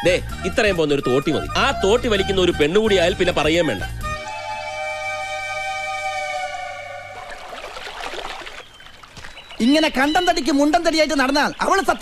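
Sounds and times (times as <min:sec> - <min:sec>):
soft film music: 0:00.0 - 0:07.8.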